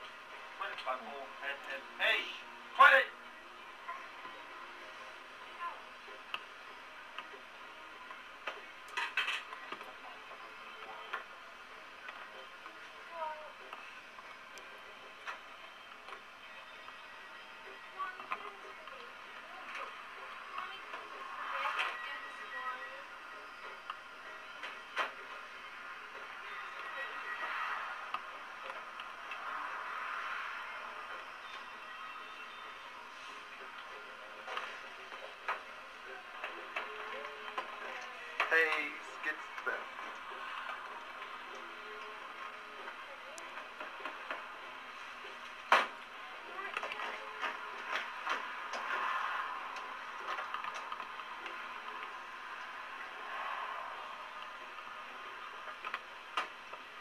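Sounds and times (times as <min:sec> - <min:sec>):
faint radio music: 0:00.0 - 0:57.0.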